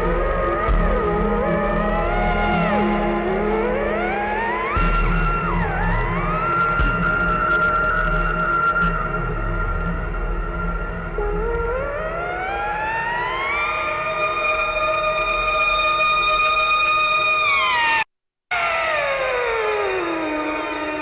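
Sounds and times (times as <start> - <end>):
siren-like electronic tones: 11.1 - 21.0.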